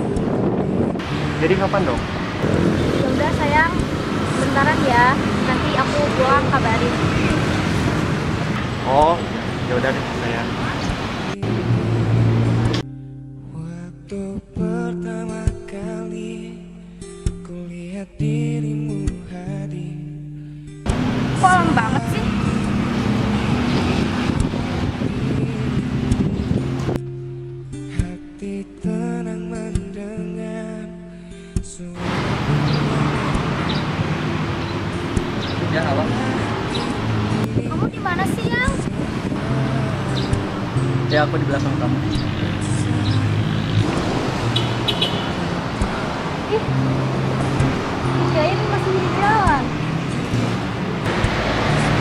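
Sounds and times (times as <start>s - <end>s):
vehicle engine humming: 0.0s - 12.8s, 20.9s - 27.0s, 32.0s - 52.0s
street traffic: 0.0s - 13.3s, 20.8s - 27.9s, 32.0s - 52.0s
soft background music: 20.9s - 44.3s.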